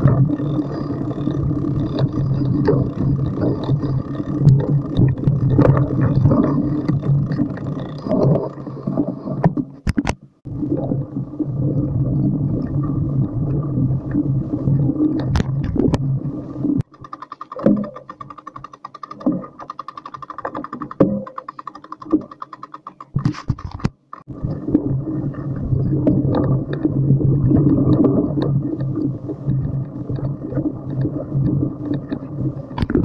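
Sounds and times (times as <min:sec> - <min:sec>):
bicycle rumbling over dirt trail: 0:00.0 - 0:09.5.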